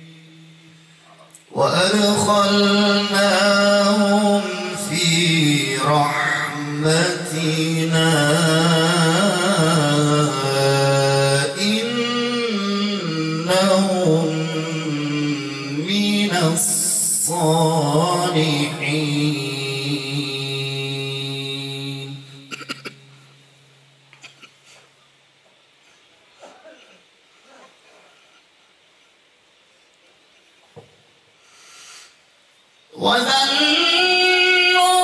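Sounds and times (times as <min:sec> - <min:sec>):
man chanting recitation: 0:00.0 - 0:23.1, 0:32.9 - 0:35.0.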